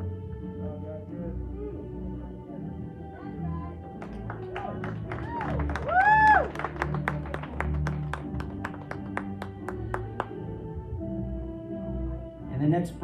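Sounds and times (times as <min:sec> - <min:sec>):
background music with low tones: 0:00.0 - 0:13.0
audience hand clapping: 0:03.9 - 0:10.4
cheering whoops: 0:04.6 - 0:06.7.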